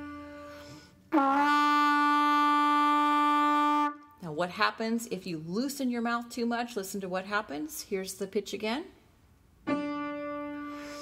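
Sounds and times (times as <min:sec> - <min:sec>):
trumpet holding a steady note: 0:00.0 - 0:04.1, 0:09.6 - 0:11.0.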